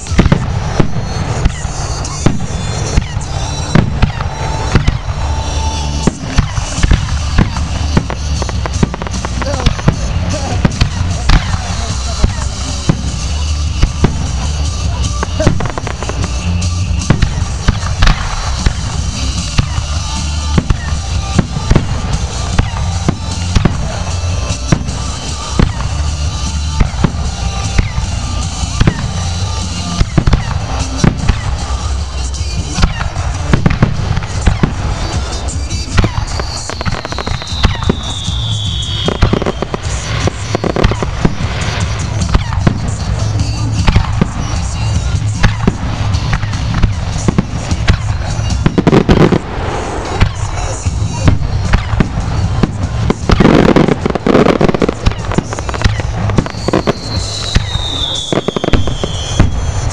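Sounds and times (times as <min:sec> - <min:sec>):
fireworks bursting with bangs: 0:00.0 - 0:59.9
falling whistle: 0:36.1 - 0:39.7, 0:56.5 - 0:59.9.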